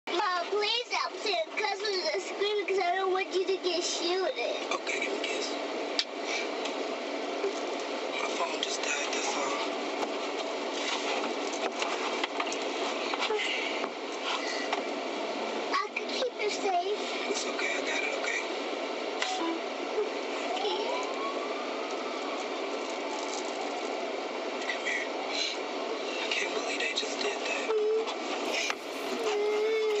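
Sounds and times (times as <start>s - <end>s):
muffled indistinct voices: 0.1s - 30.0s
steady car interior noise: 26.6s - 30.0s
car cabin noise: 28.4s - 30.0s.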